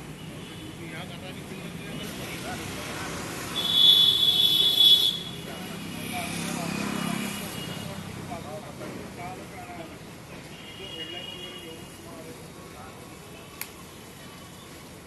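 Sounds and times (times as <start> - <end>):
vehicle noise: 0.0 - 15.0.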